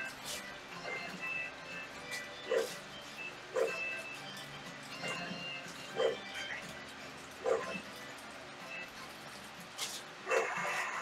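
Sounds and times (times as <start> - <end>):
background music: 0.0 - 11.0
dog barking: 2.4 - 2.8, 3.5 - 3.8, 5.9 - 6.2, 7.4 - 7.8, 10.3 - 10.8.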